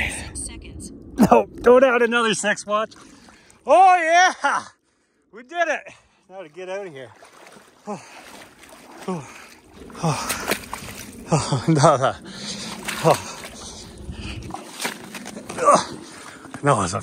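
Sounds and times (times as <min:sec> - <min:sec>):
water sloshing and splashing: 0:01.0 - 0:03.9, 0:05.9 - 0:17.0
man gasping and grunting: 0:07.8 - 0:14.6, 0:15.4 - 0:16.3.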